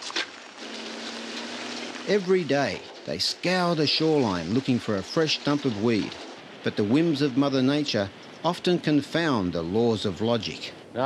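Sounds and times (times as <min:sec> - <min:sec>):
vehicle tyres on gravel: 0:00.0 - 0:10.8
engine hum: 0:00.4 - 0:11.0.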